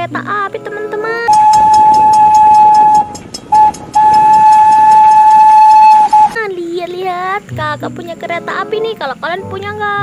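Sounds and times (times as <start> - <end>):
locomotive chuffing: 1.3 - 6.4
steam locomotive whistle: 1.3 - 6.4.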